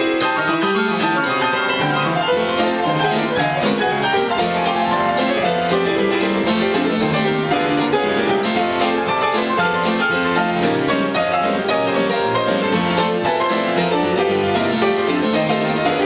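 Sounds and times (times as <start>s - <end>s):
ragtime blues piano duet: 0.0s - 16.0s.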